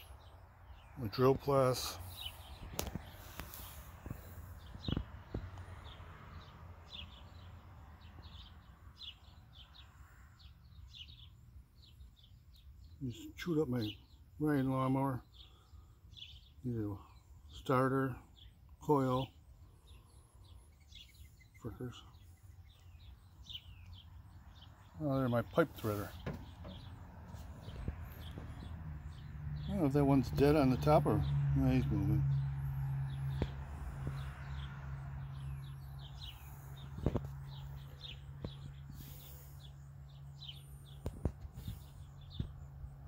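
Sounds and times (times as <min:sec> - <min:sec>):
small bird chirping: 0:00.0 - 0:06.0, 0:15.2 - 0:30.6, 0:33.1 - 0:42.9.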